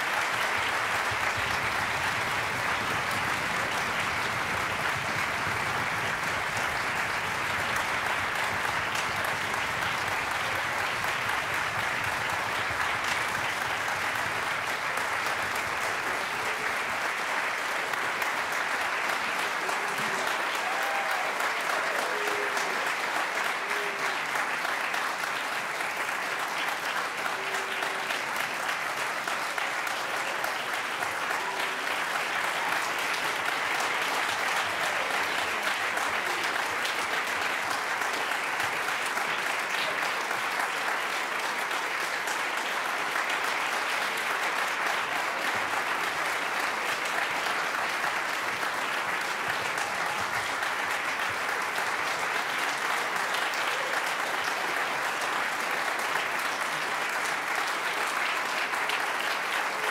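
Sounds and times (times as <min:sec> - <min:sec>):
audience applause: 0:00.0 - 0:59.9.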